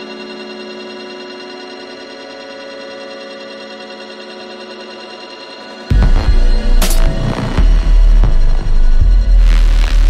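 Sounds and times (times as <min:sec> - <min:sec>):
electronic drone music: 0:05.7 - 0:10.0.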